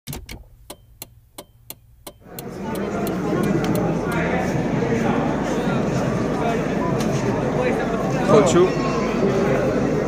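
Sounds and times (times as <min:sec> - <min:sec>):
clock-like ticking clicks: 0:00.1 - 0:04.2.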